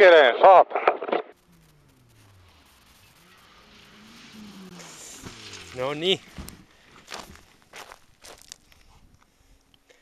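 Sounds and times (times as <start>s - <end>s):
footsteps on grass: 5.1s - 9.1s.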